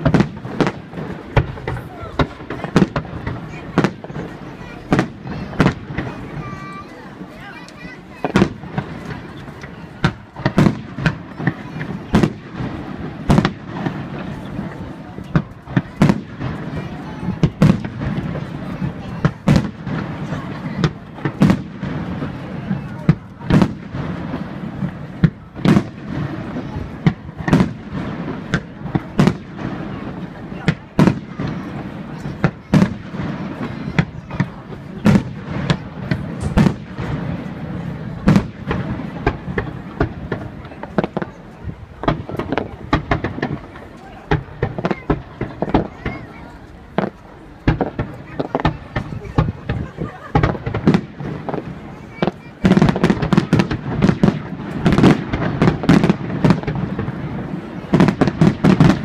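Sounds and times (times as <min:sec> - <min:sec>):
steady background noise: 0:00.0 - 0:59.0.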